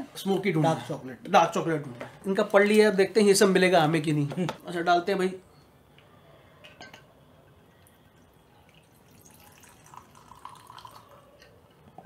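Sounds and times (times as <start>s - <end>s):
liquid pouring into glass: 7.8s - 12.0s.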